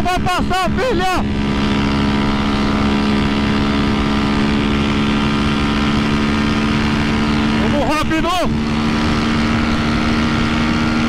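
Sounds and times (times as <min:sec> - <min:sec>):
motorcycle engine droning at high revs: 0:00.0 - 0:11.0
wind rushing over microphone: 0:00.0 - 0:11.0.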